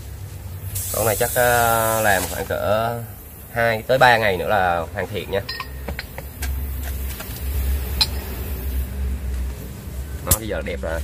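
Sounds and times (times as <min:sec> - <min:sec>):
motor vehicle engine rumble: 0:00.0 - 0:11.0.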